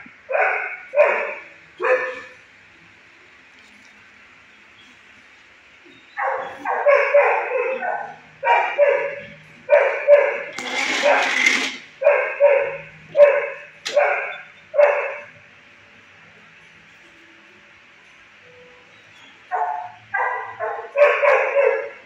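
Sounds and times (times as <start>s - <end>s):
dog barking: 0.3s - 2.4s, 6.2s - 11.4s, 12.0s - 15.3s, 19.5s - 22.0s.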